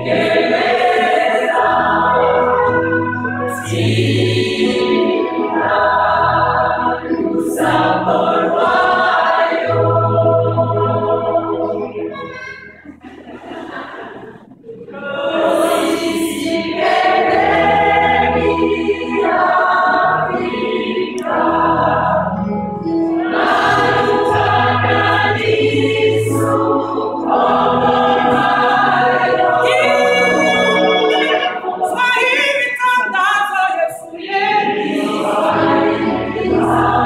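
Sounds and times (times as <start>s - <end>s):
gospel choir singing: 0.0s - 37.0s.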